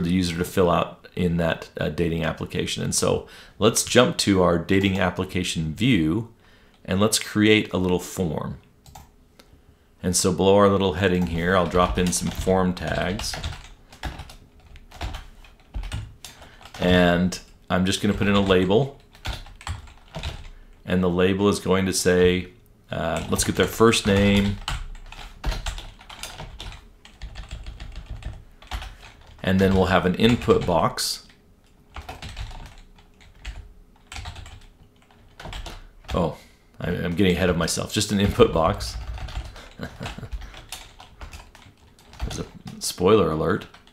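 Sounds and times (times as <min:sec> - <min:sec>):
computer keyboard typing: 0:08.8 - 0:09.1, 0:11.0 - 0:20.6, 0:23.1 - 0:36.2, 0:38.0 - 0:42.8, 0:43.6 - 0:43.9.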